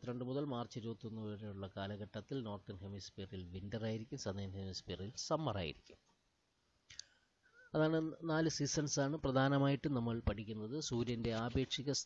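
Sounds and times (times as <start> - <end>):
man speaking: 0.0 - 6.0, 7.7 - 12.0.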